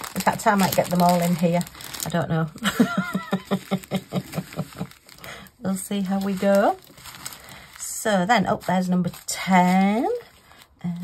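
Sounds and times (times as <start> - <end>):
woman laughing: 2.6 - 5.1.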